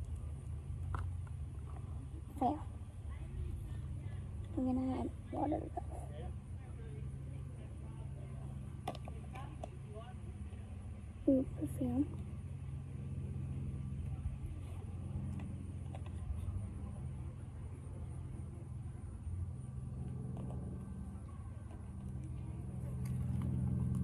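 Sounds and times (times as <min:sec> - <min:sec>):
low background hum: 0:00.0 - 0:24.0.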